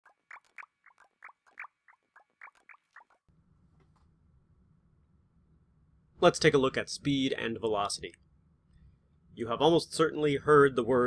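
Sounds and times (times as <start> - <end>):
low steady hum: 3.3 - 11.0.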